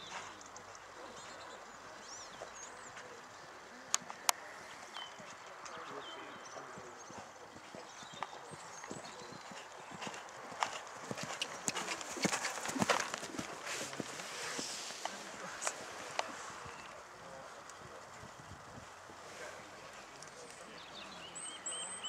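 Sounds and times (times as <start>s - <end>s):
horse hoofbeats on sand: 7.0s - 14.7s.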